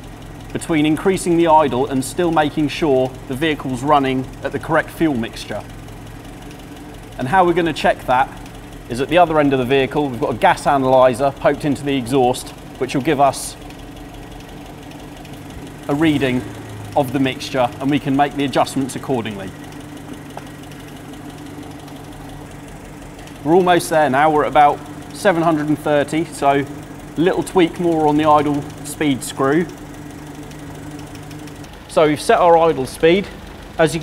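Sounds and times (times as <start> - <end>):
car engine idling: 0.0 - 34.0.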